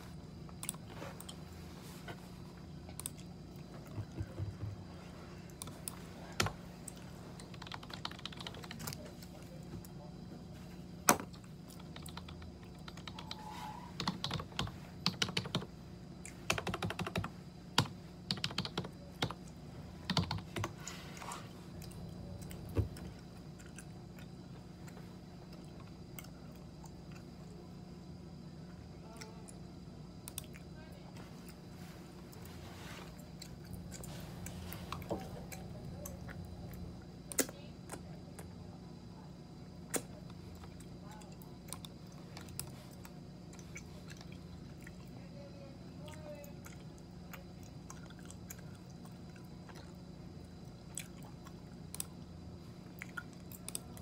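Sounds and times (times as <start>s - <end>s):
steady background hum: 0.0s - 54.0s
computer keyboard typing: 7.4s - 9.0s, 11.7s - 15.7s, 16.3s - 20.8s.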